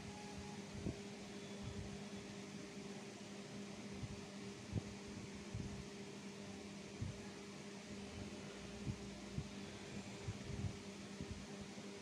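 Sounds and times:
fan humming: 0:00.0 - 0:12.0.

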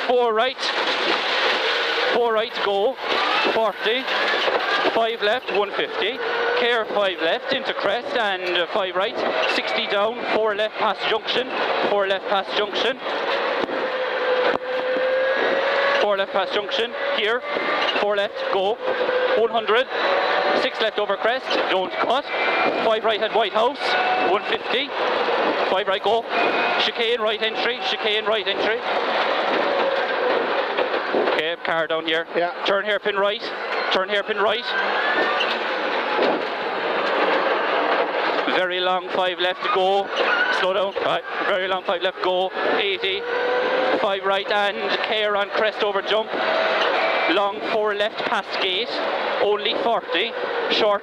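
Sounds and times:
rally car engine accelerating: 0:00.0 - 0:51.0
road and cabin noise: 0:00.0 - 0:51.0.

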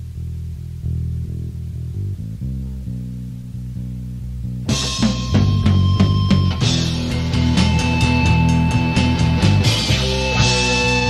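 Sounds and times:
bass guitar playing low notes: 0:00.0 - 0:11.0.

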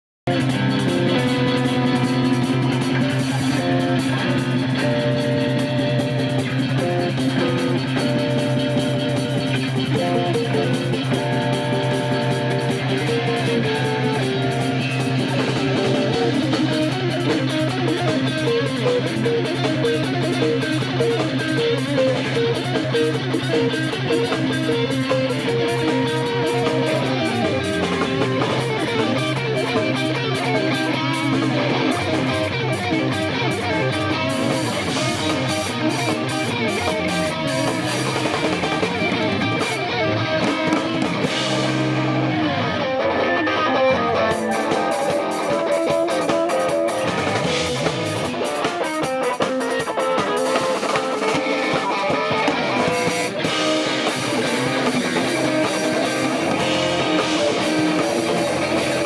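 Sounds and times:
bass guitar: 0:00.2 - 0:59.0
drum kit: 0:00.3 - 0:59.0
overdriven electric guitars: 0:00.3 - 0:59.0.

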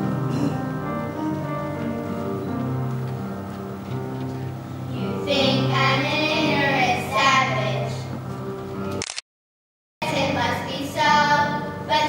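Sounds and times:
instrumental accompaniment with bass: 0:00.0 - 0:09.0
girl singing: 0:05.0 - 0:08.1, 0:10.0 - 0:12.0.

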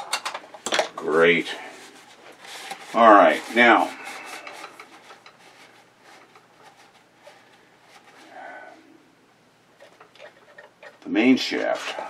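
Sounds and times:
rag rubbing on metal: 0:01.5 - 0:08.5, 0:09.8 - 0:12.0.

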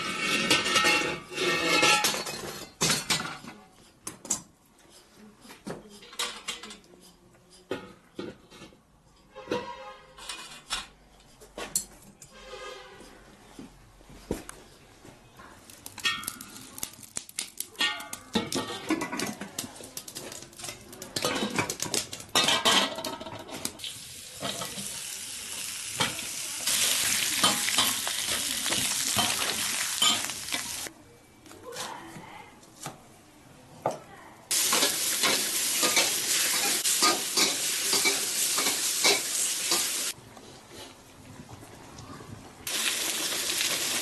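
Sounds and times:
metal spatula scraping a pan: 0:00.0 - 0:02.8, 0:09.2 - 0:11.4, 0:12.2 - 0:13.2, 0:34.5 - 0:40.1
hot oil sizzling: 0:23.8 - 0:30.9, 0:34.5 - 0:40.2, 0:42.7 - 0:44.0.

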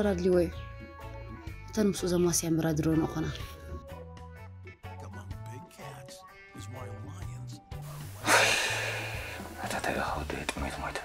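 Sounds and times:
background music with low bass: 0:00.0 - 0:11.0
loud breathy exhale: 0:08.2 - 0:09.6.

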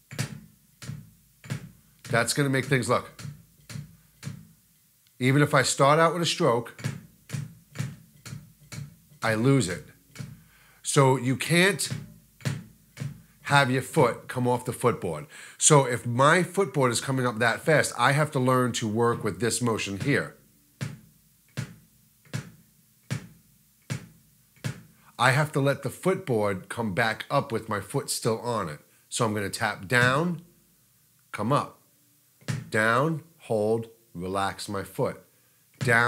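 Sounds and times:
kick drum beater strokes: 0:00.0 - 0:04.6, 0:06.7 - 0:14.3, 0:18.8 - 0:25.2, 0:32.4 - 0:32.8
bass drum thuds: 0:11.8 - 0:13.4, 0:19.1 - 0:25.0.

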